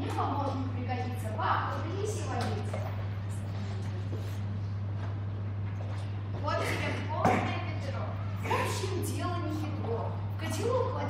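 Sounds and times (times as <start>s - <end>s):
young voices speaking: 0.0s - 4.9s, 6.4s - 11.0s
steady low hum: 0.0s - 11.0s.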